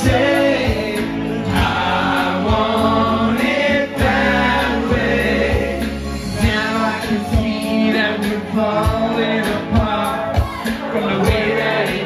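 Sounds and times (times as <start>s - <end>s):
amplified pop-rock music: 0.0s - 12.0s
men singing together: 0.0s - 12.0s
steady drum beat: 0.0s - 12.0s.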